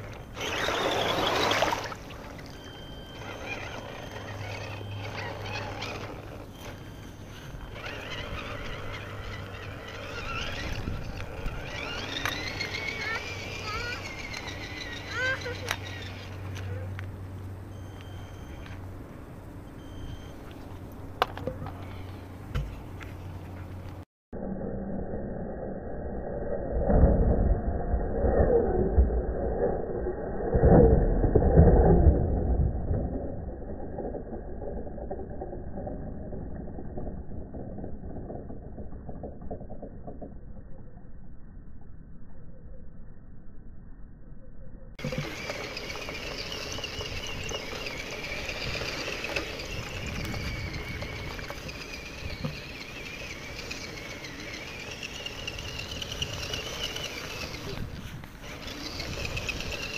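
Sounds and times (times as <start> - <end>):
small electric motor whine: 0.0 - 17.1, 45.0 - 59.9.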